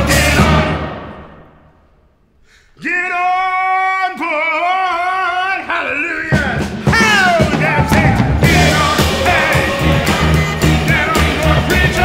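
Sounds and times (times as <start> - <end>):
drums and band playing: 0.0 - 1.4, 6.2 - 12.0
man singing soul: 3.2 - 12.0.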